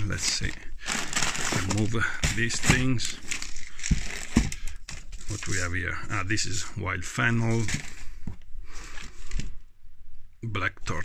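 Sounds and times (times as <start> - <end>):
hands rummaging seed packets: 0.0 - 9.6.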